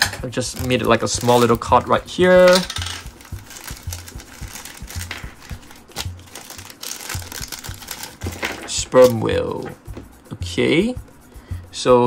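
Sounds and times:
background music with soft beat: 0:00.0 - 0:12.0
plastic bag crinkling: 0:00.3 - 0:09.3.

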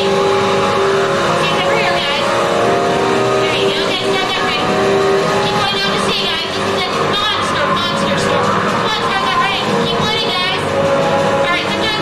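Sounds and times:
voices calling out: 0:00.0 - 0:12.0.

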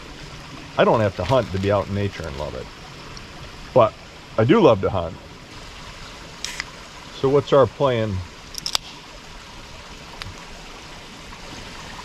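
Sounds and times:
creek running over stones: 0:00.0 - 0:12.0.

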